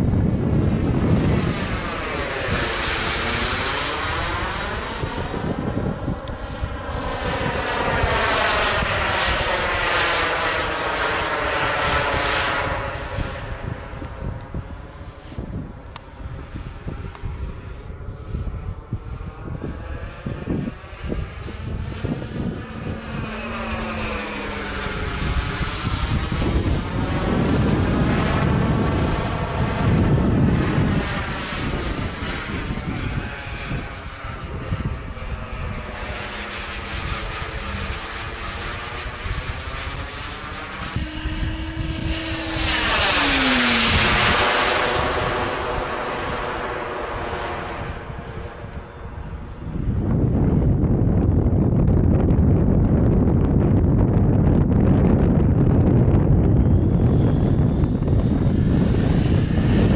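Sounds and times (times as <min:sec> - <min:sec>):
model jet rushing and whining: 0:00.0 - 0:59.9.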